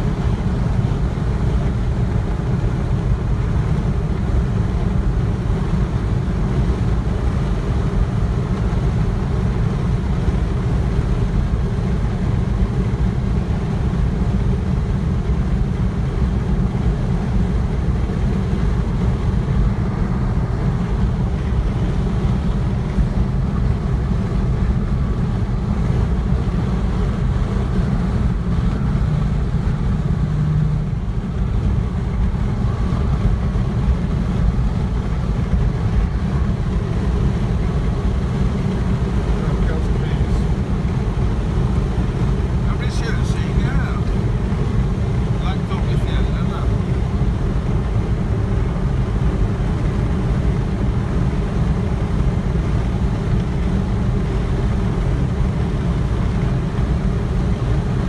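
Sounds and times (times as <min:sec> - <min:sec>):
tyre and engine rumble: 0:00.0 - 0:58.0.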